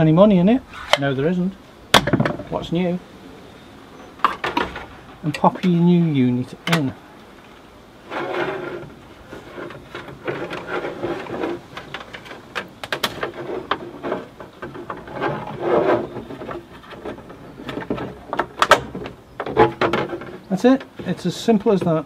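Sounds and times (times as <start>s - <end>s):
plastic rubbing and scraping: 7.4s - 22.0s.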